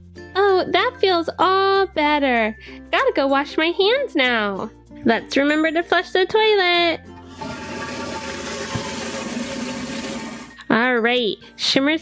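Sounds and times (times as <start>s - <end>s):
toilet flushing: 7.3s - 10.6s.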